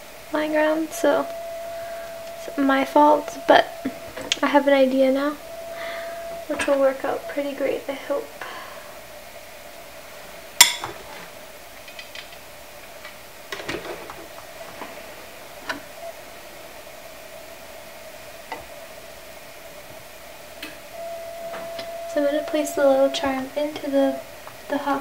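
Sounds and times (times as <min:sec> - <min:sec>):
steady hum: 0:00.0 - 0:13.6, 0:14.2 - 0:25.0.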